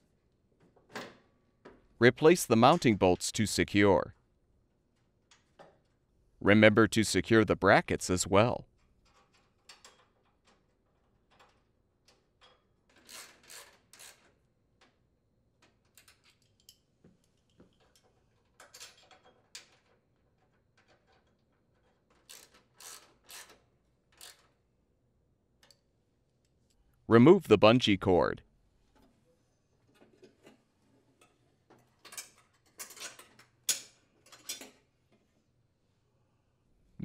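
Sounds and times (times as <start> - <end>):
ratchet wrench clicking: 22.3 - 23.5.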